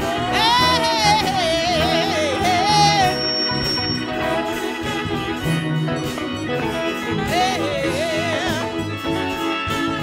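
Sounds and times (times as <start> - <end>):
woman singing gospel: 0.0 - 3.4, 7.1 - 8.9
held accompaniment chords: 0.0 - 10.0.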